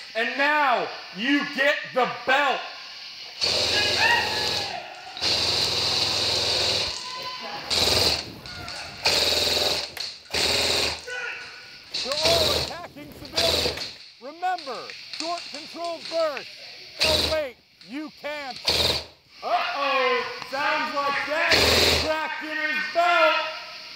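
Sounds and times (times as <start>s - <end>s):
airsoft gun firing bursts: 3.4s - 7.0s, 7.7s - 11.1s, 11.9s - 14.0s, 17.0s - 17.5s, 18.6s - 19.2s, 21.5s - 22.1s.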